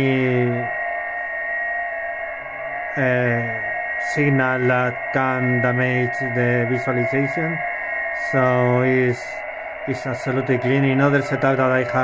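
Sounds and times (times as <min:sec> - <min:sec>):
radio band noise: 0:00.0 - 0:12.0
thin whistling tone: 0:00.0 - 0:12.0.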